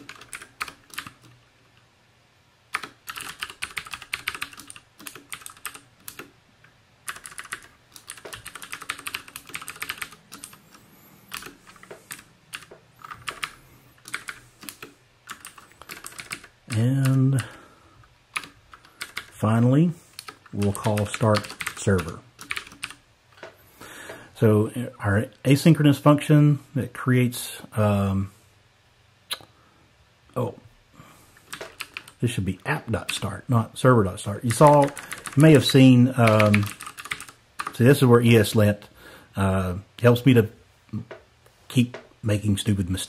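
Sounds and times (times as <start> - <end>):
typing on computer keyboard: 0.0 - 1.4, 2.7 - 6.3, 7.0 - 17.6, 18.3 - 19.4, 20.1 - 23.5, 31.5 - 32.2, 34.5 - 37.8.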